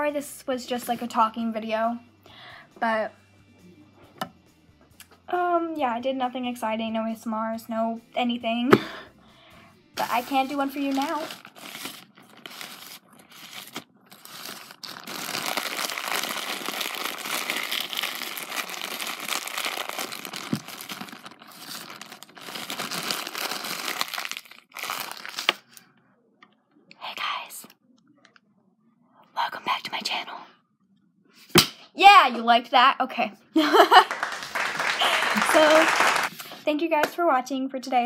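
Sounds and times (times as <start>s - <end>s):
plastic bag crinkling: 10.0s - 25.7s.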